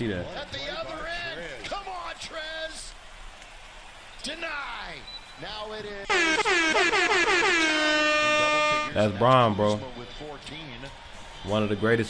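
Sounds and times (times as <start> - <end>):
sports commentator talking: 0.0 - 2.9, 4.2 - 12.0
arena crowd noise: 0.0 - 12.0.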